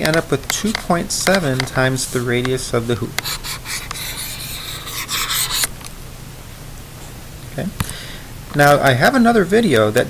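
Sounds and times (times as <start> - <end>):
stylus scratching on tablet: 3.2 - 5.7.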